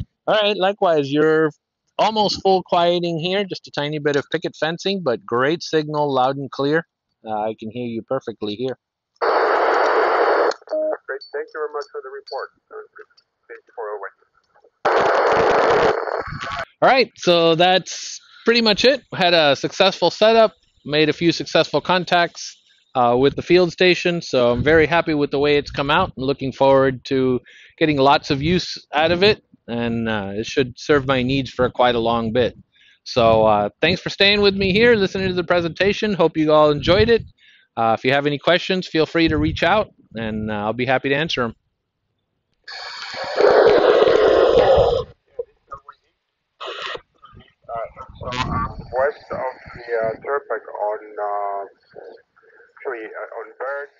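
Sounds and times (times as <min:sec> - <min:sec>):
radio static hiss: 0:09.2 - 0:14.1, 0:14.7 - 0:17.0, 0:42.7 - 0:46.0, 0:46.6 - 0:53.9.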